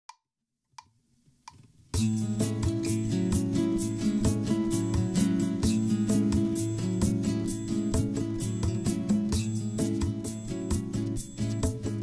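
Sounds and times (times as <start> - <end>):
bossa nova karaoke backing track: 2.0 - 12.0.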